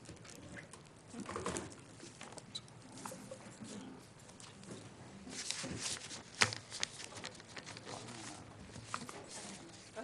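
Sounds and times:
papers rustling: 0:04.4 - 0:10.0.

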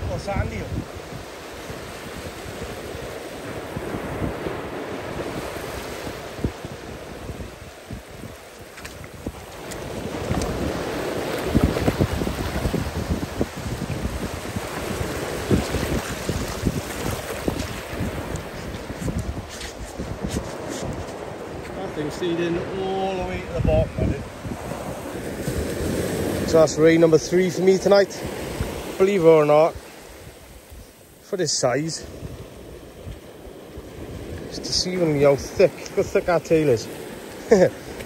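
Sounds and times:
wind on microphone: 0:00.0 - 0:31.2, 0:31.9 - 0:38.0
surf breaking on beach: 0:00.0 - 0:38.0
water splashing: 0:04.4 - 0:38.0.

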